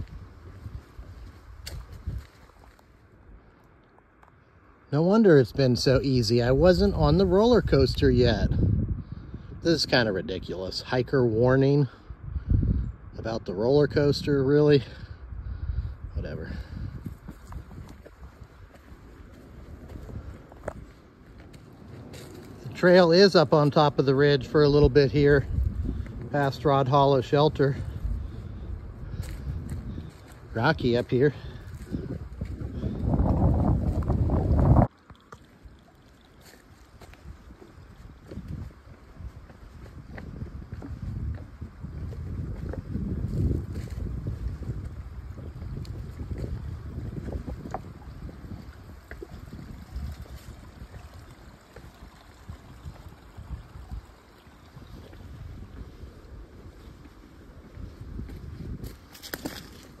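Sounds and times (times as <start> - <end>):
footsteps on rocks and dry leaves: 0.0 - 3.2, 16.7 - 35.6, 36.2 - 51.8, 54.7 - 60.0
wind buffeting microphone: 0.0 - 3.5, 5.3 - 60.0.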